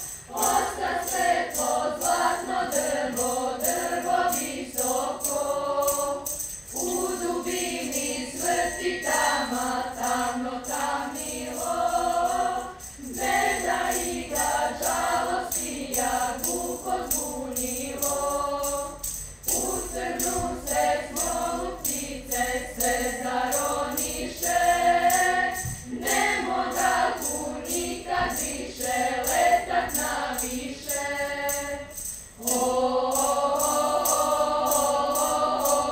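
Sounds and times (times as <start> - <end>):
girls' choir singing: 0.0 - 35.9.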